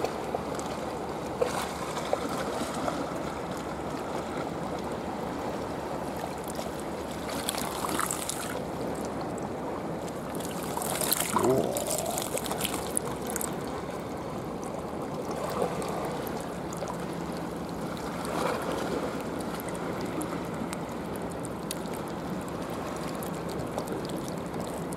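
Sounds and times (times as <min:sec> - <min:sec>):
seawater washing on rocky shore: 0:05.8 - 0:09.3, 0:10.0 - 0:14.3
water trickling: 0:06.2 - 0:14.0.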